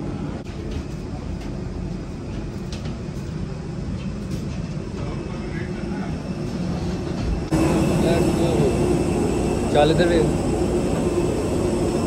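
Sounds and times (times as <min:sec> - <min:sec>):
aircraft and ventilation rumble: 0:00.0 - 0:12.0
steady low hum: 0:00.0 - 0:12.0.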